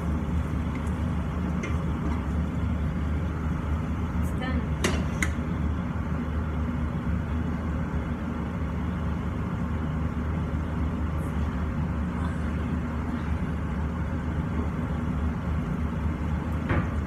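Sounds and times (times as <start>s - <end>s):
extractor fan humming: 0.0s - 17.0s.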